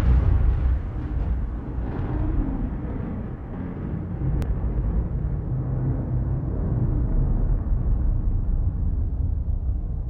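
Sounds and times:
deep low rumbling soundtrack: 0:00.0 - 0:10.0.

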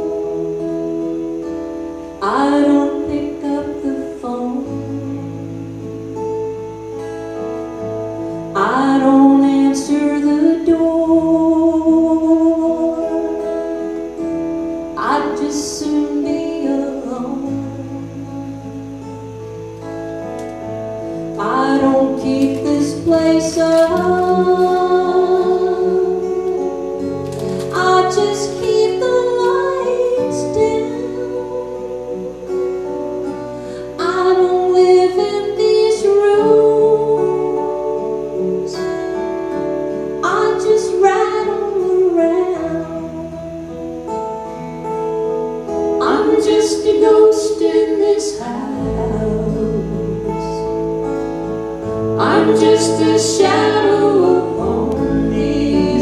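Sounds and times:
strummed acoustic guitars: 0:00.0 - 0:56.0
woman singing: 0:02.1 - 0:05.9, 0:08.5 - 0:19.3, 0:21.3 - 0:43.8, 0:45.9 - 0:51.2, 0:52.0 - 0:56.0
electric bass guitar: 0:48.9 - 0:56.0.

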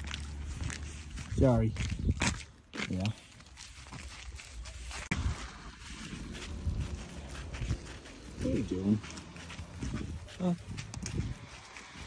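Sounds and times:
footsteps crunching through snow: 0:00.0 - 0:12.0.

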